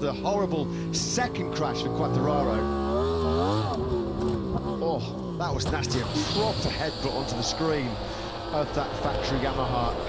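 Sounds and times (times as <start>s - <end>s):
motorcycle engine revving: 0.2s - 10.0s.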